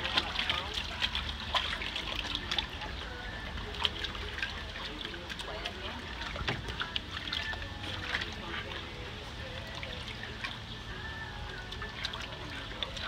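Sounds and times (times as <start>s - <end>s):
background voices: 0.0s - 13.0s
water splashing and trickling: 0.0s - 13.0s.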